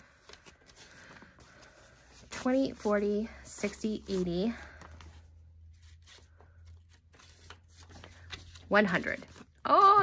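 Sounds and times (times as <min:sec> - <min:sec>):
paper banknotes rustling: 0:00.0 - 0:09.8.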